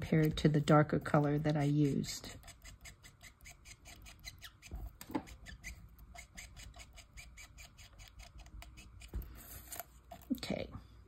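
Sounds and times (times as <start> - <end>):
marker scratching on card: 0.1 - 9.8.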